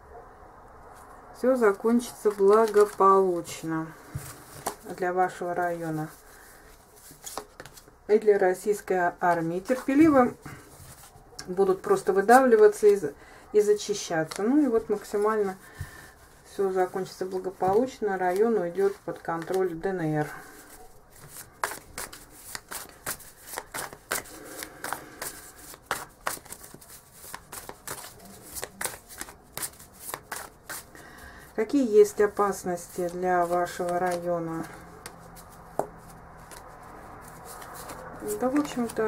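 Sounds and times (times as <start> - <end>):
cards being shuffled: 2.0 - 7.9, 9.3 - 11.2, 13.8 - 31.0, 31.6 - 39.0.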